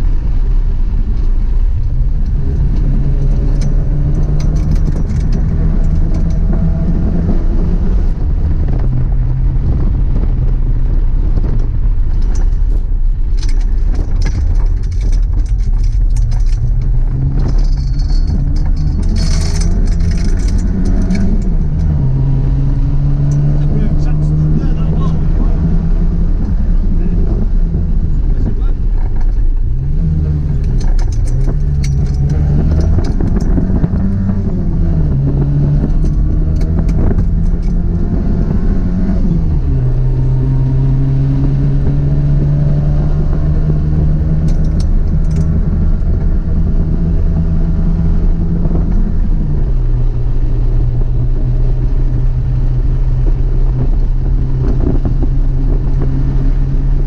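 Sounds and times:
car engine revving: 0.0 - 57.0
road rumble: 0.0 - 57.0.

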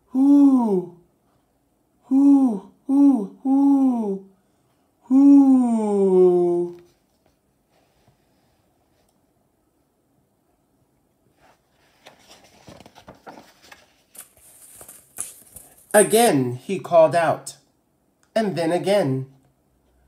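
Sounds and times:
man imitating owl hoot: 0.0 - 1.1, 2.0 - 4.4, 5.0 - 6.9
book pages rustling: 11.4 - 16.0.

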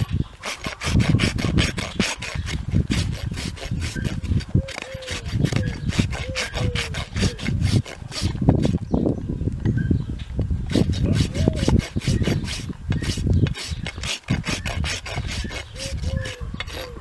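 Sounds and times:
hoof rasp filing: 0.0 - 8.9, 10.7 - 17.0.

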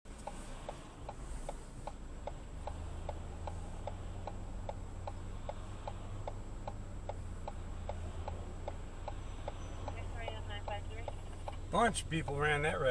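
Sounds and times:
low steady hum: 0.1 - 12.9
turn signal ticking: 0.1 - 12.9.

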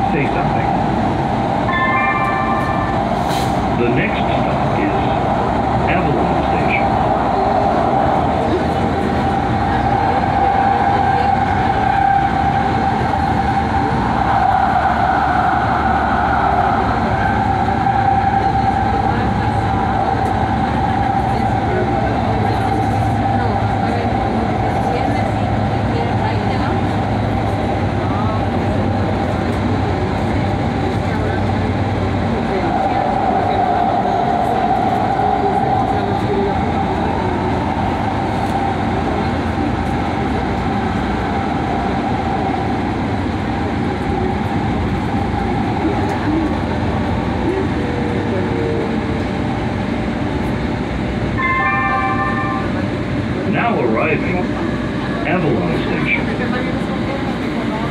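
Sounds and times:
train wheels rumbling on track: 0.0 - 57.9.

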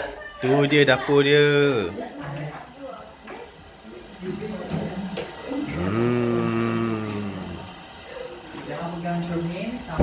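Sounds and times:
person humming a long low note: 5.7 - 7.7.

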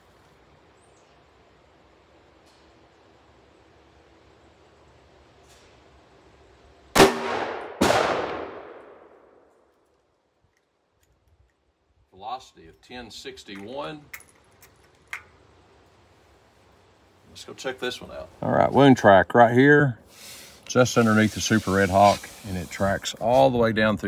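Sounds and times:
revolver gunshot: 6.9 - 9.5
sharp crack: 6.9 - 9.9.

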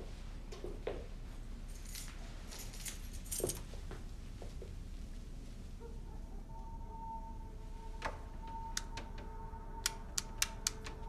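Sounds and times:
low film score drone: 5.8 - 11.0.

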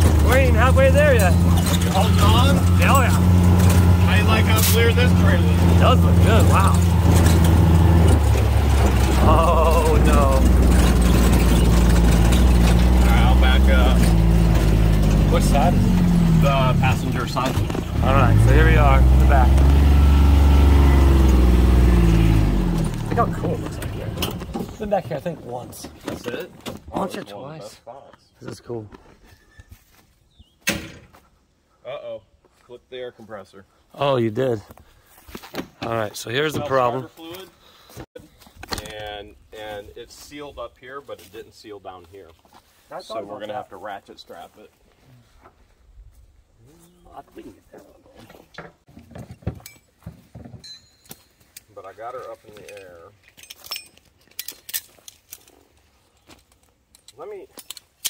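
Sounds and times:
utility vehicle rolling on dirt: 0.0 - 27.5
ratchet strap clinking and rattling: 52.6 - 58.0.

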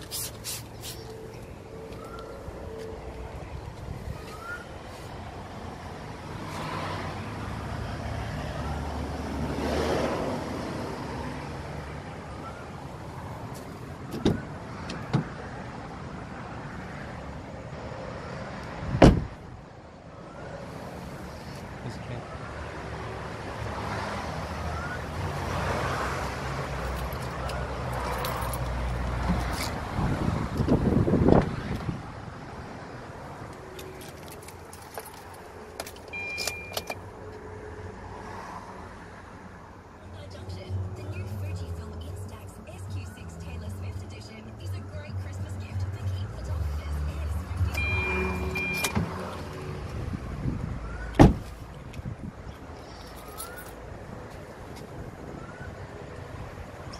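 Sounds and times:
motor vehicle engine rumble: 0.0 - 56.9.

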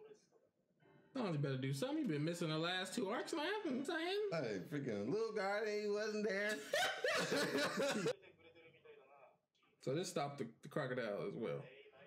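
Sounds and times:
faint television speech: 0.0 - 12.0
man chuckling: 6.5 - 8.1.

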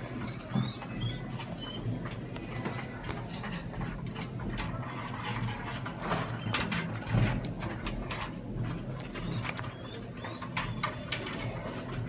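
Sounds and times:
squabs squeaking: 0.0 - 4.1, 4.7 - 12.0
pigeon clicks: 0.0 - 12.0.

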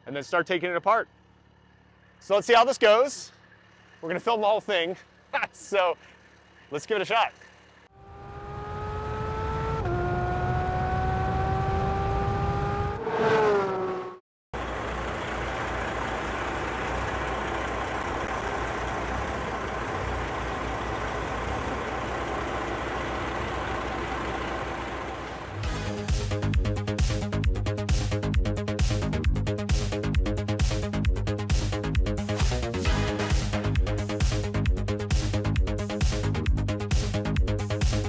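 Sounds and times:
revving engine-like tone: 7.4 - 26.3
electronic music with pulsing beat: 25.6 - 38.0.

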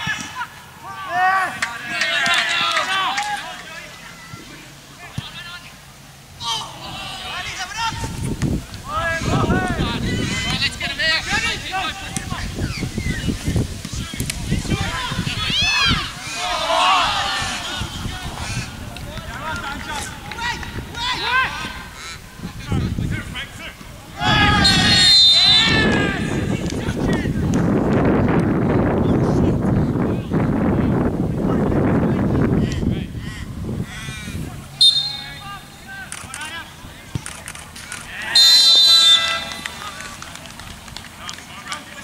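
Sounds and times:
distant players shouting: 0.0 - 8.2, 13.9 - 27.3, 33.2 - 40.5.

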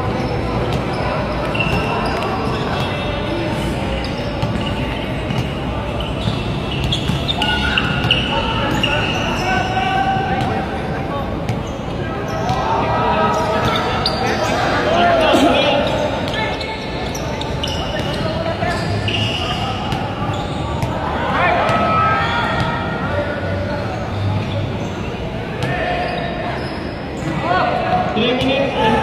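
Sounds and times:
players calling out: 0.0 - 29.0
basketball bouncing: 4.4 - 8.2.

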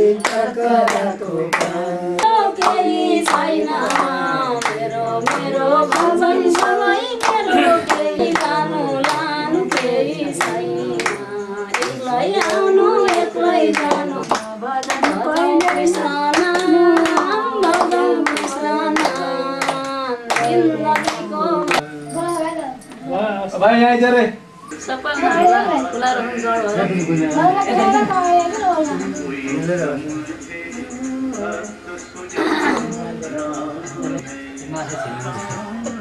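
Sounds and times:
group singing devotional song: 0.0 - 36.0
steady hand claps: 0.1 - 21.8.

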